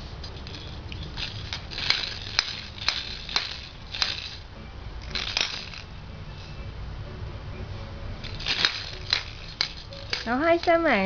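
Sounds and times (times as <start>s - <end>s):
plastic toy rings clacking: 0.3s - 4.4s, 5.0s - 5.9s, 8.2s - 11.0s.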